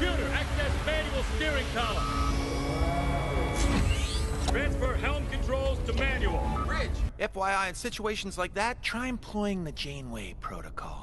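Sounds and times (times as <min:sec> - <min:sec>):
rising whine: 0:01.6 - 0:04.8
held electronic tones: 0:01.8 - 0:04.6.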